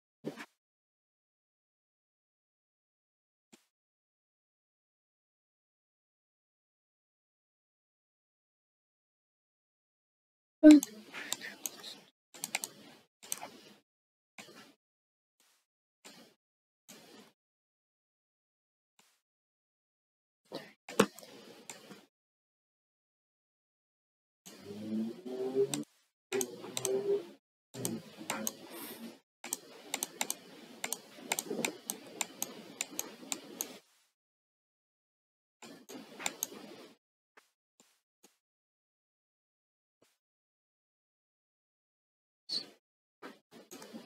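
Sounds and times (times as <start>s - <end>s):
keyboard and mouse clicking: 10.6s - 13.6s, 26.4s - 27.0s, 27.8s - 28.7s, 29.5s - 33.8s, 35.6s - 36.7s.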